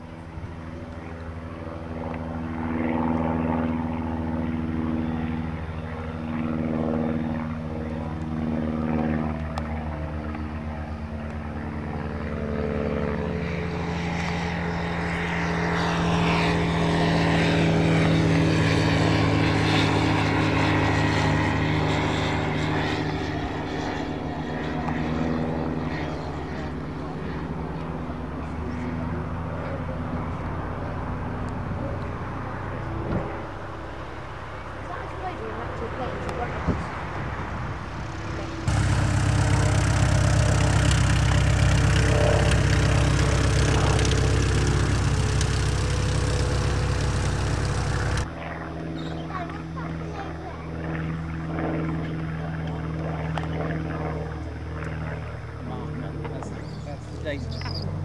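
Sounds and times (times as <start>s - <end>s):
propeller aircraft engine droning: 0.0s - 58.0s.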